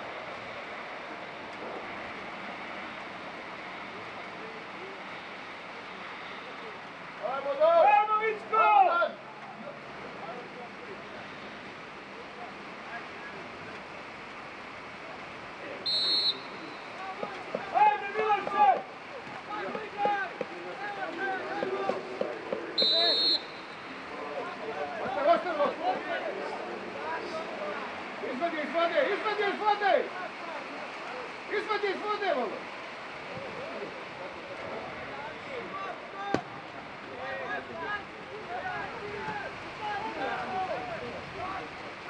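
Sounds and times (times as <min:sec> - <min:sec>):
steady background hiss: 0:00.0 - 0:42.0
people shouting: 0:07.6 - 0:09.2, 0:16.3 - 0:22.2
referee's whistle blasts: 0:15.8 - 0:17.3, 0:22.8 - 0:23.9.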